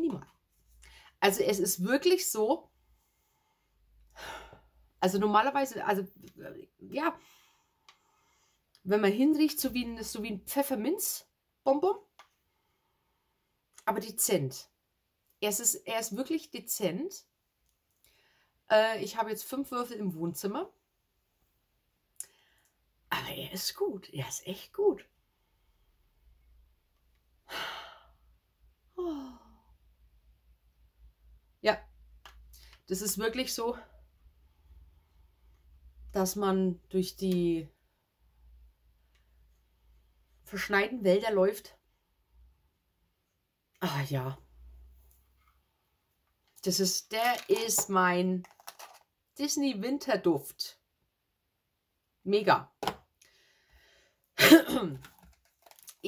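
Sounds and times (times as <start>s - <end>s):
woman sighing: 27.5s - 28.2s, 28.9s - 29.7s.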